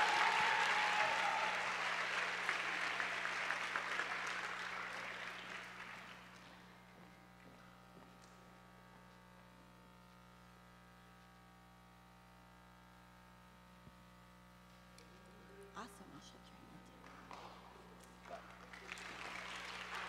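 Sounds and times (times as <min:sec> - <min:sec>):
audience applauding: 0:00.0 - 0:06.7, 0:17.0 - 0:20.0.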